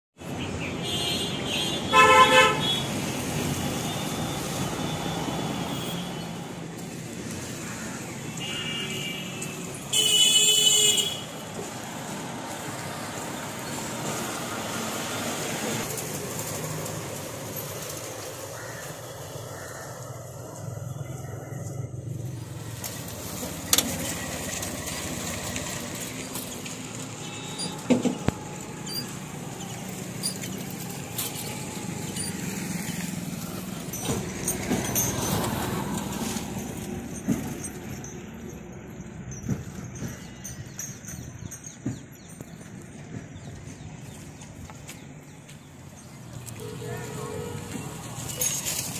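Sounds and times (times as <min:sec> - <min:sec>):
roadside traffic noise: 0:00.2 - 0:48.9
vehicle horn honking: 0:00.8 - 0:02.9, 0:08.4 - 0:11.3, 0:27.2 - 0:27.9, 0:46.6 - 0:48.5.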